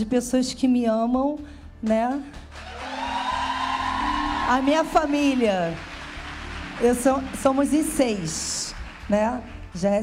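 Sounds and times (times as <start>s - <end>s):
audience applauding and cheering: 2.4s - 9.9s.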